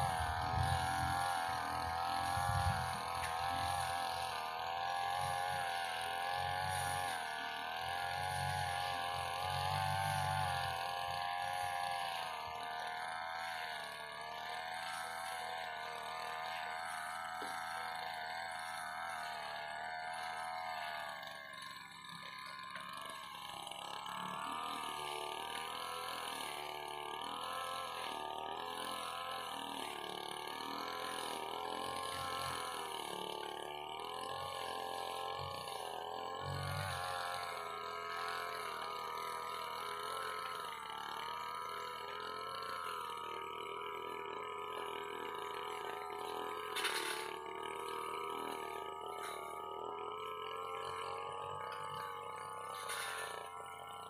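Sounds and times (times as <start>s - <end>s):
distant brush cutter engine revving: 0.0s - 54.0s.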